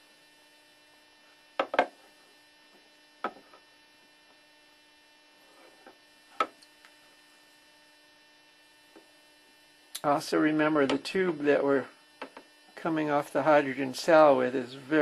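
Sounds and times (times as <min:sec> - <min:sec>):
steady electrical hum: 0:00.0 - 0:15.0.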